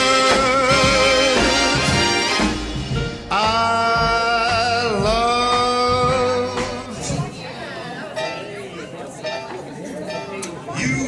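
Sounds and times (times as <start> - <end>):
dance song with held sung note: 0.0 - 7.4
guests chattering: 0.0 - 11.0.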